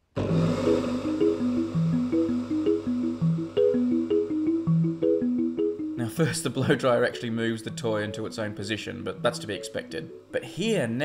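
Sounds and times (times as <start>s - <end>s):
quick melody over low tone: 0.2s - 10.4s.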